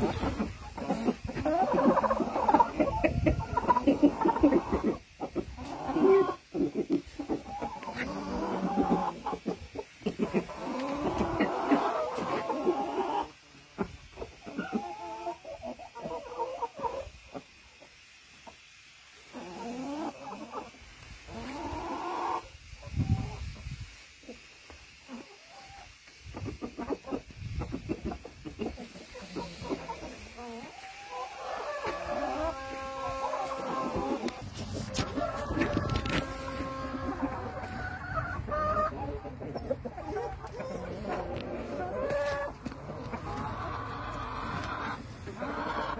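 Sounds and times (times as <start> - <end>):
chickens clucking and calling: 0.0 - 45.9.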